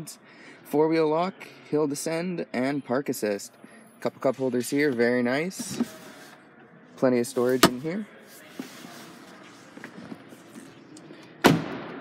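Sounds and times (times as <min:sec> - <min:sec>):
faint handling noise: 0:04.2 - 0:06.4, 0:07.3 - 0:11.1
car door shutting: 0:07.5 - 0:07.8.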